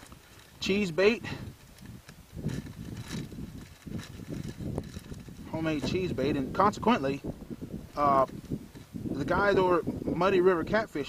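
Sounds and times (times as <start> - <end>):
plastic bag crinkling: 1.5 - 5.5.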